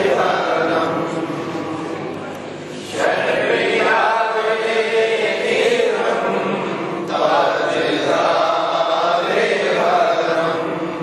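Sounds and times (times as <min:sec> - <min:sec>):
men chanting together: 0:00.0 - 0:01.6, 0:02.8 - 0:11.0.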